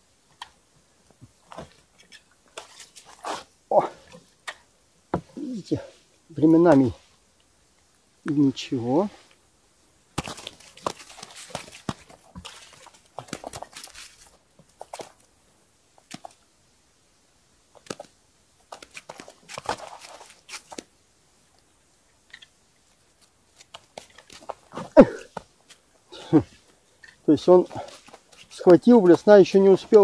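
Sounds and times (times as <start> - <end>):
fish flapping on snow: 10.2 - 15.3, 18.7 - 21.0.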